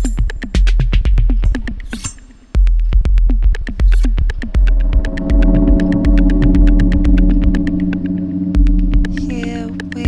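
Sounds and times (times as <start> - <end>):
electronic synthpop music: 2.6 - 10.0.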